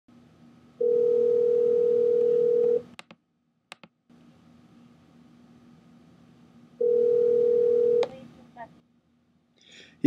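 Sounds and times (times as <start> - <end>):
faint line hiss and hum: 0.1 - 10.0
telephone ringing tone: 0.8 - 2.9, 6.8 - 8.1.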